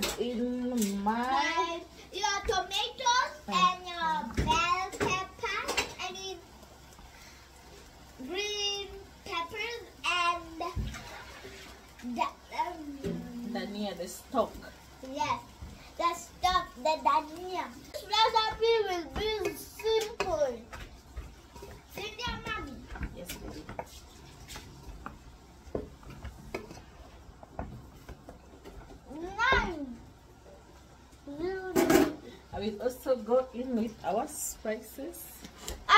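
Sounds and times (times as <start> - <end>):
child talking: 1.2 - 6.5, 8.2 - 11.0, 12.0 - 13.5, 15.0 - 20.7, 21.9 - 23.2, 29.1 - 30.0, 31.2 - 32.4.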